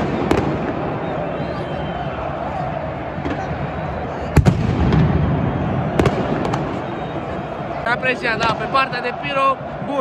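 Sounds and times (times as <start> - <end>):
crowd din: 0.0 - 10.0
firecrackers banging: 4.3 - 6.9.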